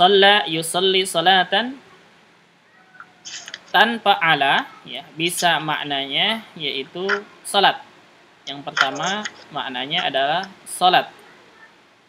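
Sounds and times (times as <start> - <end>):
person speaking: 2.8 - 7.9, 8.5 - 11.7.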